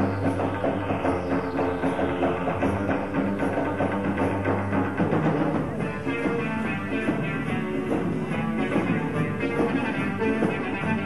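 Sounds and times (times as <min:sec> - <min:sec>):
drum kit beat: 0:00.0 - 0:11.0
electric guitars: 0:00.0 - 0:11.0
live band playing dance music: 0:00.0 - 0:11.0.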